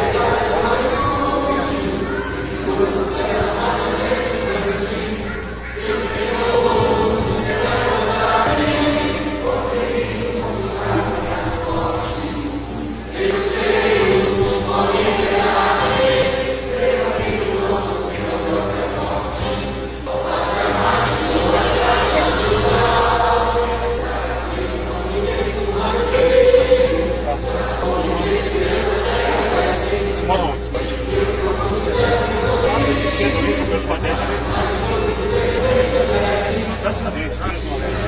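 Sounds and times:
choir singing held notes: 0.0s - 38.0s
low musical backing: 0.0s - 38.0s.

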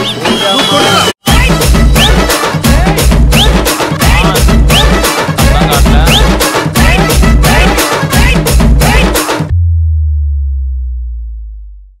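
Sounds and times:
dj mix music: 0.0s - 9.5s
deep bass note ringing: 9.5s - 12.0s.

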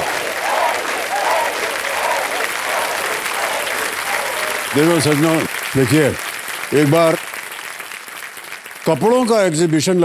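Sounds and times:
people cheering: 0.0s - 8.3s
audience clapping: 0.0s - 10.0s.

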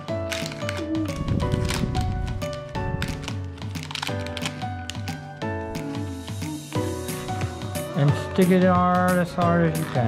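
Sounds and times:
background music with bass line: 4.3s - 10.0s.

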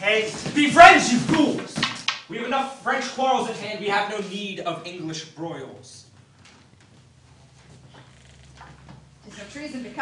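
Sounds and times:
steady low hum: 2.3s - 10.0s
footsteps on wooden stage floor: 6.0s - 9.2s.

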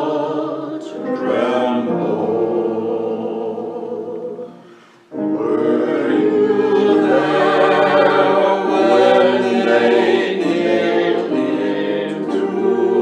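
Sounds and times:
choir singing in harmony: 0.0s - 13.0s.

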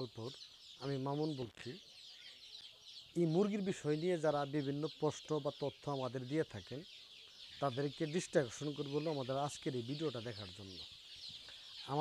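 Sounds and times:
man speaking: 0.0s - 1.8s, 3.2s - 6.8s, 7.6s - 10.8s
chicks peeping and chirping: 0.0s - 12.0s.

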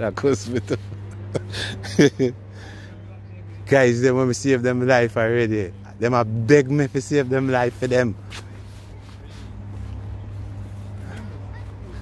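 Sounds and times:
faint outdoor background noise: 0.0s - 12.0s
low hum: 0.0s - 12.0s.

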